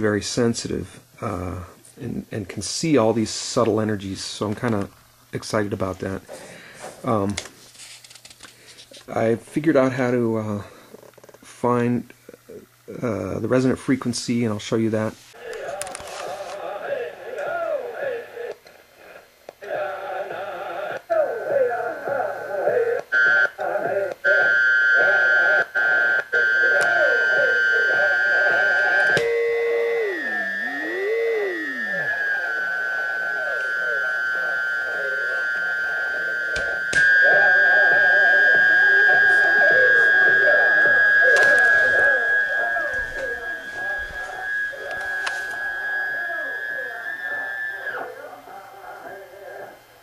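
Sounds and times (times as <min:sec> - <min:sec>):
chanting music from radio speaker: 0:15.3 - 0:50.0
high heterodyne whistle: 0:26.6 - 0:48.0.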